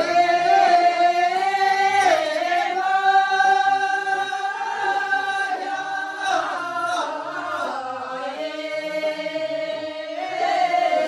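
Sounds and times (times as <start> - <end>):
women singing folk song: 0.0 - 11.0.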